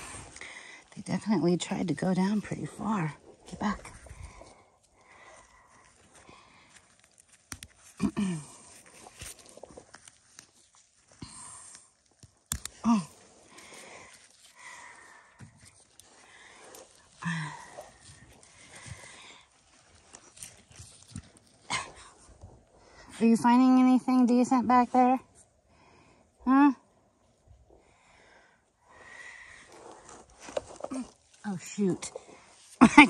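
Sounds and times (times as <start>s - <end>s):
hands digging in soil: 0.0s - 23.8s, 29.5s - 33.0s.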